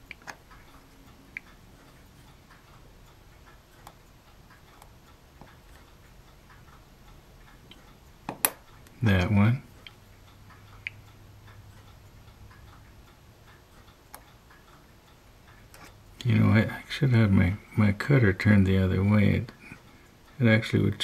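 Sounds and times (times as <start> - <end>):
faint ticking: 0.0 - 21.0.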